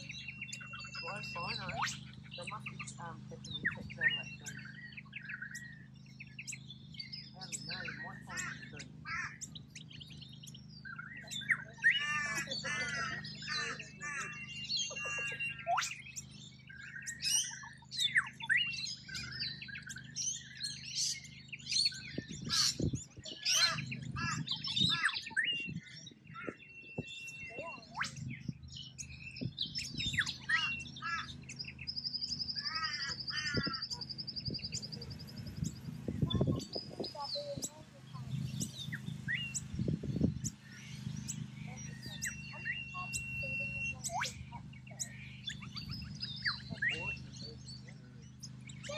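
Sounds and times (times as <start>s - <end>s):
birds chirping and squawking: 0.0s - 48.9s
high steady bird trill: 0.0s - 48.9s
low steady hum: 0.0s - 48.9s.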